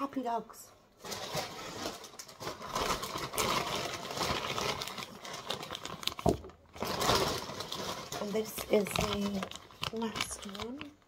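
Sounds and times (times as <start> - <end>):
plastic bag crinkling: 0.9 - 11.0.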